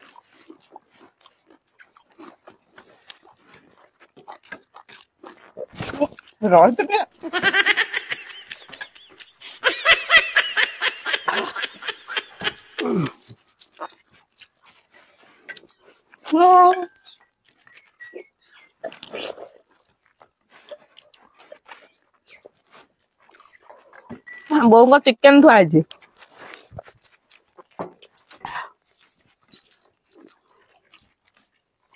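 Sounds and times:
mouths chewing food: 0:00.0 - 0:31.9.

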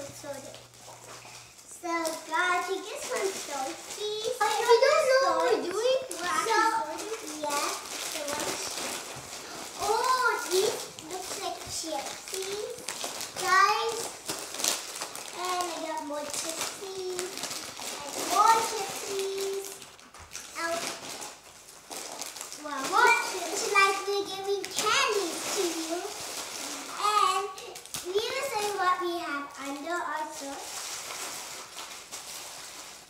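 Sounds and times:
plastic wrappers crinkling: 0:00.0 - 0:33.0
children chattering: 0:02.3 - 0:08.9, 0:09.8 - 0:12.8.

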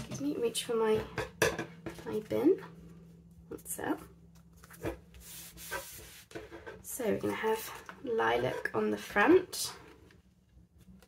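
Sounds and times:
hands rubbing across paper: 0:05.1 - 0:06.6.

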